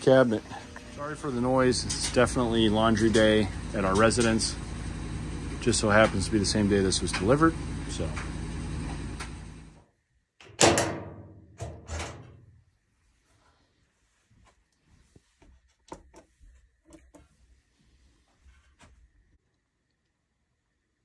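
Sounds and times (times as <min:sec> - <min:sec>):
laundry machine running: 0:00.0 - 0:09.8.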